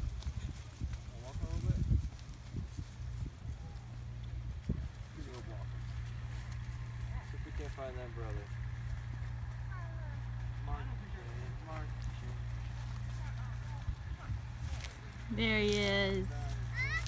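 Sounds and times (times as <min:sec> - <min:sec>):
steady low rumble: 0:00.0 - 0:17.0
voices and vocal sounds: 0:09.5 - 0:17.0.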